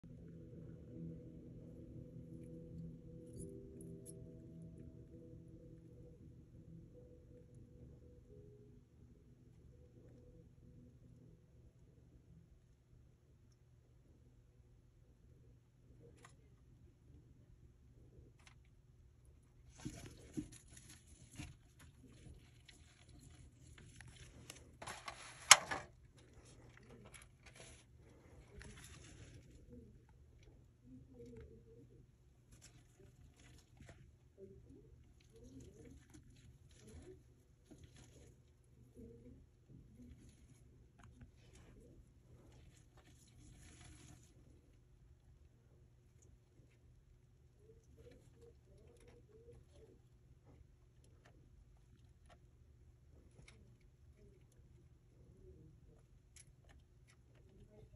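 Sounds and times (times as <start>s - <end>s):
lizards scratching and rustling: 19.7s - 29.9s, 40.0s - 44.8s.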